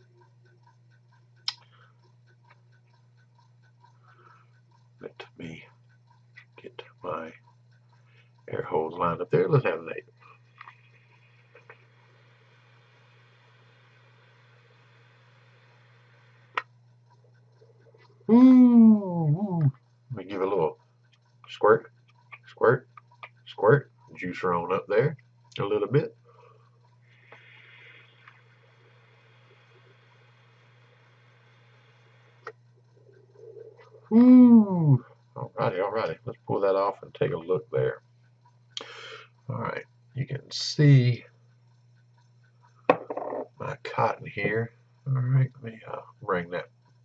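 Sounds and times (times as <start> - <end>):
low steady hum: 0.0 - 47.0
small click: 1.4 - 1.7
air hissing through atomizer: 26.4 - 34.1
airy hiss of vape drag: 27.2 - 28.3.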